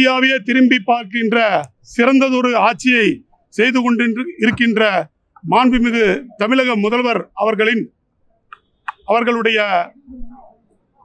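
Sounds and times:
man speaking: 0.0s - 7.9s, 9.0s - 10.0s.

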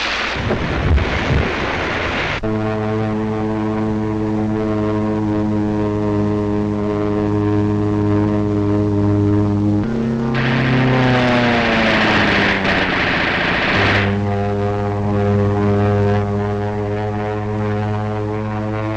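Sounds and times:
propeller aircraft engine drone: 0.0s - 18.9s
rushing noise: 10.2s - 14.3s.

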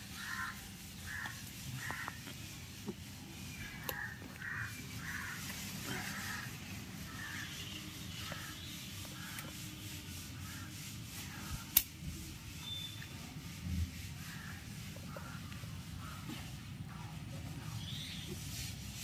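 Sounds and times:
sharp click: 11.7s - 12.0s.

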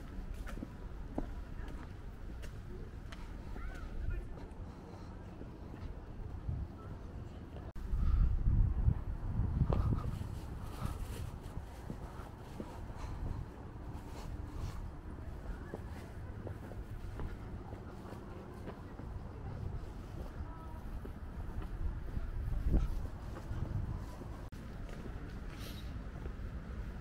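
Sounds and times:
faint distant voices: 0.0s - 27.0s
wind rumble on microphone: 3.9s - 27.0s.

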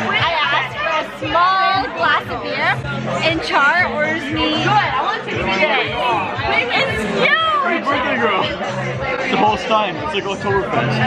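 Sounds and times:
lively chatter of voices: 0.0s - 11.0s.

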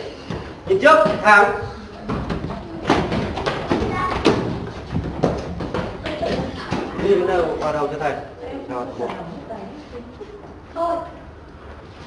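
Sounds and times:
children's footsteps: 0.0s - 8.0s
children's voices: 2.5s - 4.7s, 6.0s - 7.1s.

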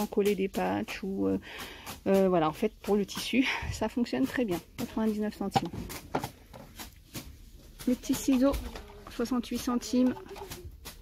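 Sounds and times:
plastic bottle clicks and rustles: 5.4s - 11.0s.

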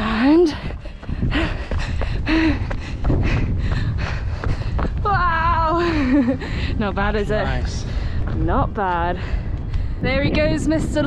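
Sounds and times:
person panting heavily: 0.0s - 5.0s, 5.7s - 6.8s
wind buffeting microphone: 0.0s - 11.0s.

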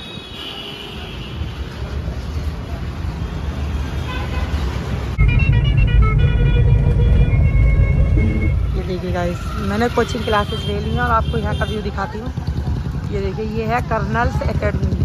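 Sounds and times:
rumble of passing traffic: 0.0s - 15.0s
vehicle engines and road noise: 0.0s - 15.0s.

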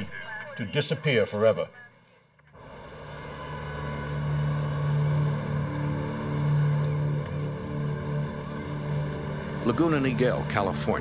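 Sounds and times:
low engine drone: 2.4s - 11.0s.

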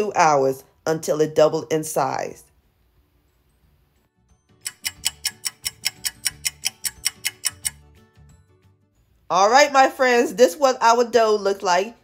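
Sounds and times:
clock ticking: 4.6s - 7.8s.

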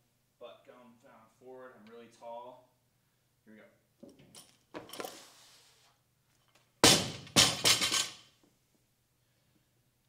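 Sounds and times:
barbell dropped on gym floor: 6.8s - 8.2s.

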